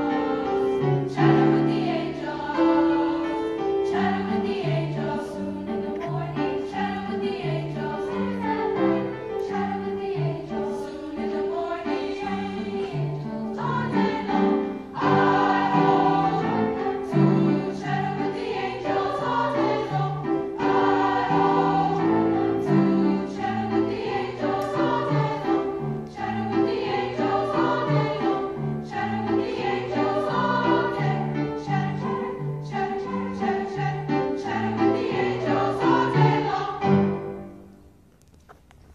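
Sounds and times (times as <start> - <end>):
youth choir singing: 0.0 - 37.3
grand piano accompaniment: 0.0 - 38.9.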